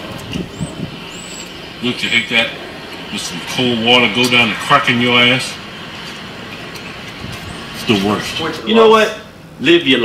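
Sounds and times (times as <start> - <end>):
car interior noise: 0.0 - 8.6.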